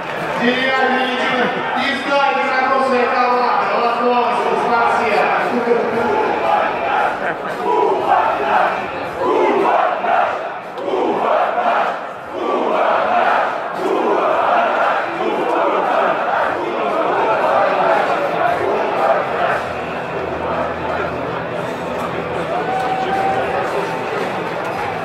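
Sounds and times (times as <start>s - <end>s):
stadium crowd chanting: 4.1s - 25.0s.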